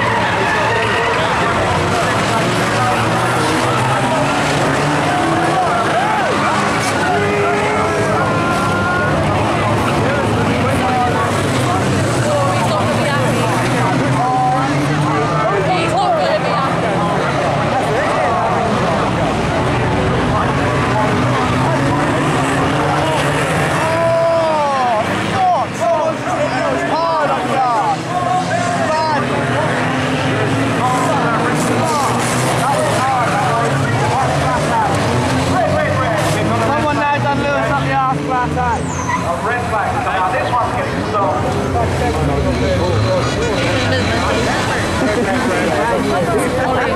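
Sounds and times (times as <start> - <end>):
racing car engines revving: 0.0 - 46.9
spectators talking: 0.0 - 46.9.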